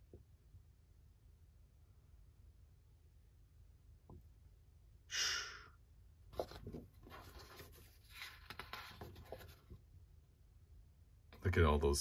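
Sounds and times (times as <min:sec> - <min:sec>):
paper sheets rustling and sliding: 0:06.4 - 0:09.8.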